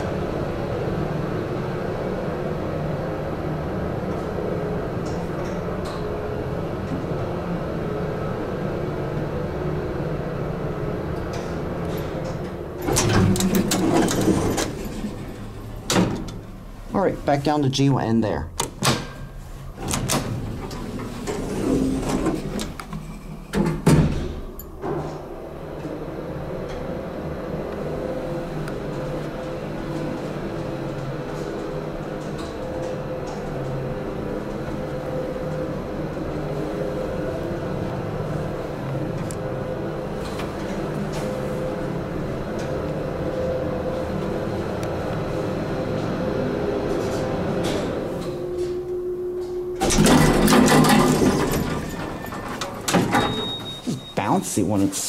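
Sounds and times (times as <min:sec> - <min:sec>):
elevator doors opening with rush: 0:00.0 - 0:55.0
elevator doors knocking shut: 0:12.4 - 0:16.5, 0:23.5 - 0:25.4, 0:49.8 - 0:54.2
hoist motor humming: 0:18.5 - 0:54.4.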